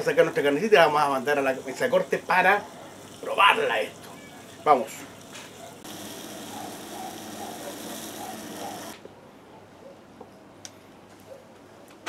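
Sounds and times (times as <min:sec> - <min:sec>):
steaks sizzling on a grill: 0:00.1 - 0:08.9.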